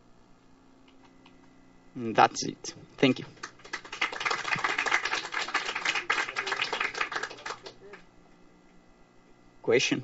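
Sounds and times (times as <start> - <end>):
audience applauding: 3.4 - 8.0.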